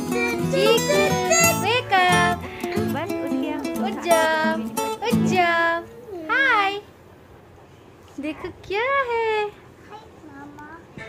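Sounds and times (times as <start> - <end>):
toddler squealing: 0.0 - 1.7.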